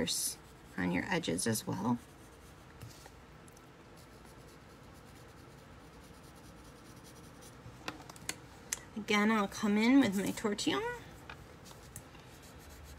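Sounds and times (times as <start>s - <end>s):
pencil scratching on paper: 4.0s - 7.6s, 11.7s - 12.9s.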